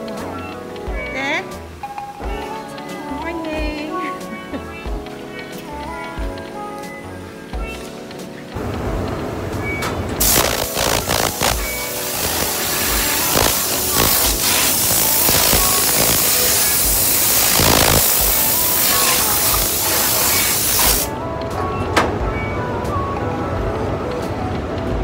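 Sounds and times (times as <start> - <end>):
background music with beat: 0.0 - 25.0
spray gun hissing: 10.2 - 21.1.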